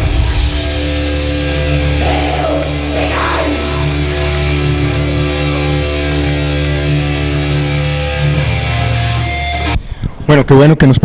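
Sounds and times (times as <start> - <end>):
distorted electric guitar chords: 0.0 - 10.0
bass guitar: 0.0 - 10.3.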